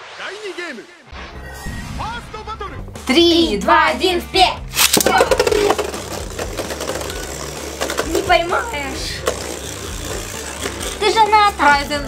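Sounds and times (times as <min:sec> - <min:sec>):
spinning tops whirring: 0:04.7 - 0:12.0.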